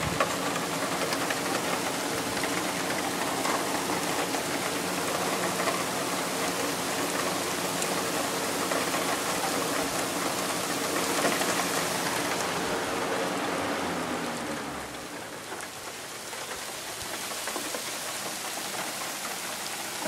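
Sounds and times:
steady rain falling: 0.0 - 20.0.

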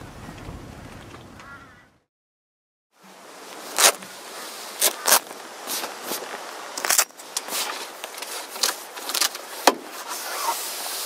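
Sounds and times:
awning rustling and scraping: 3.6 - 11.0.

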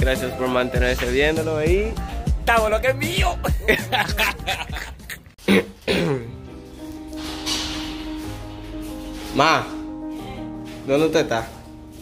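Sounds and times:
music with held notes: 0.0 - 12.0
throat clearing: 5.4 - 6.4.

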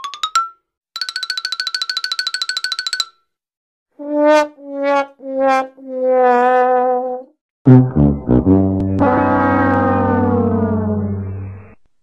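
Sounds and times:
fast repeating note: 7.7 - 10.7
rising run of plucked notes: 7.7 - 11.6.

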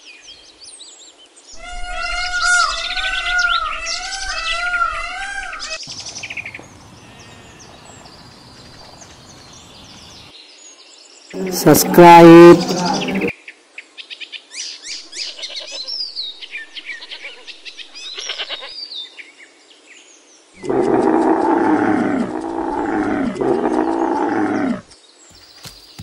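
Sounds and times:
small birds chirping: 0.3 - 13.4, 14.0 - 26.0
goat bleating: 7.0 - 8.0.

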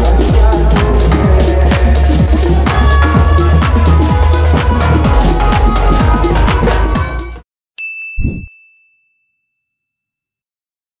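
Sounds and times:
electronic background music: 0.0 - 7.4
bright ding: 7.8 - 10.0.

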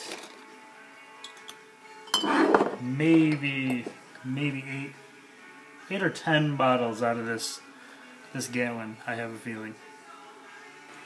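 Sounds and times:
glass bottle clink with ring: 1.2 - 2.8
glass bottles tapping: 1.2 - 4.0.

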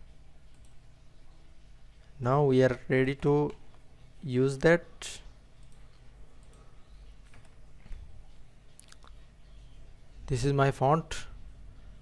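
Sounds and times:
steady low hum: 0.0 - 12.0
computer mouse clicks: 0.5 - 0.8, 5.6 - 8.0.

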